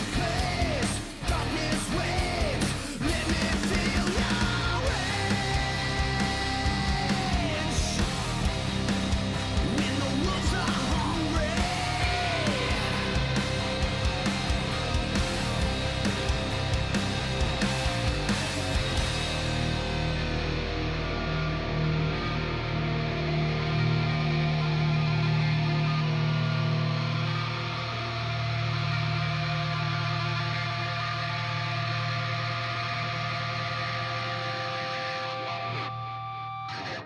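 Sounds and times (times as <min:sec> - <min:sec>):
distorted electric guitars: 0:00.0 - 0:37.0
hard rock band playing: 0:00.0 - 0:37.0.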